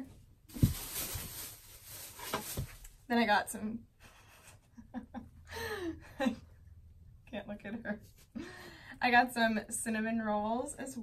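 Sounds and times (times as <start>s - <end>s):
items thumping in bags: 0.5s - 2.9s
plastic bags rustling: 0.5s - 3.0s.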